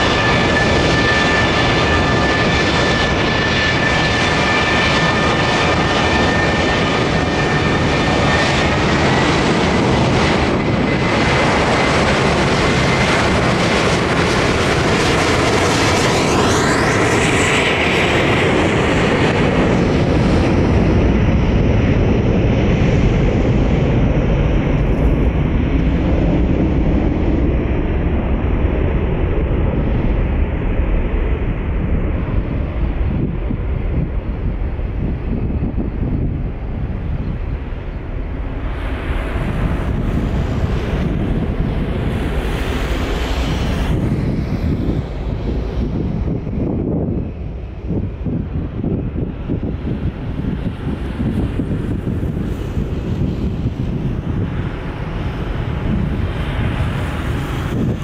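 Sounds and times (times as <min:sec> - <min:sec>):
jet engines at takeoff: 0:00.0 - 0:58.0
wind on microphone: 0:00.0 - 0:58.0.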